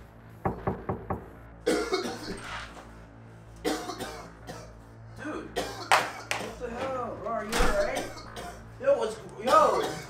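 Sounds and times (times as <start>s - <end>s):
man coughing harshly: 1.6s - 2.5s, 3.6s - 4.8s, 5.4s - 6.7s, 7.9s - 8.7s, 9.4s - 10.0s.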